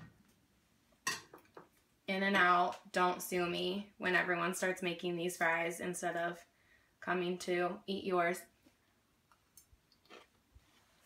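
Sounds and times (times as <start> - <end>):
person chewing food: 9.9 - 10.8.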